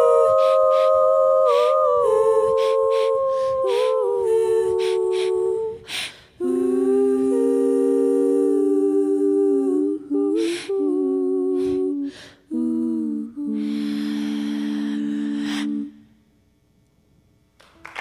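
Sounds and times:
women humming in harmony: 0.0s - 16.1s.

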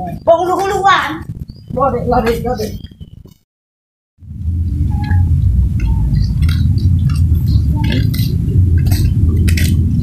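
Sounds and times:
heavy low rumble: 0.0s - 3.4s, 4.2s - 10.0s.

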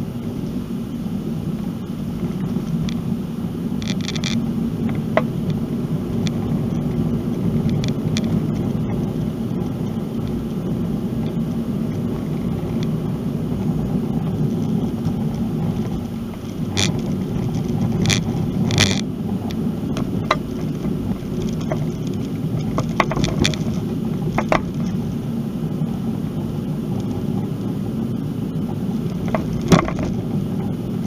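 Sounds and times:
car road and engine noise: 0.0s - 31.0s.

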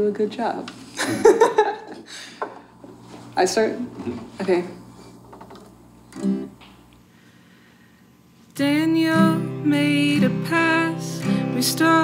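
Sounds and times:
acoustic guitar chord strum: 8.6s - 12.0s.

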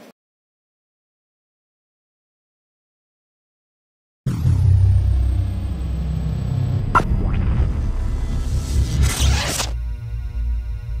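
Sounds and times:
low held bass tone: 4.3s - 9.2s
whoosh: 4.3s - 9.8s.

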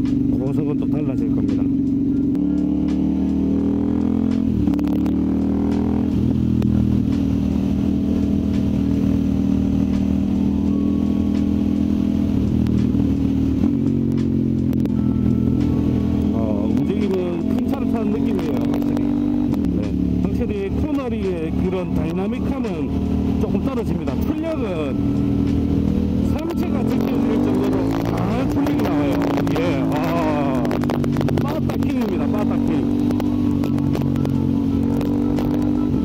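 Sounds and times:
motorcycle engine cruising: 0.0s - 36.0s.

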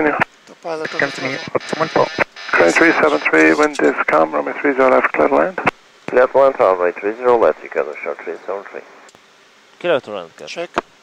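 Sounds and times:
voice over aircraft radio: 0.0s - 5.6s
faint high radio whine: 0.0s - 11.0s.

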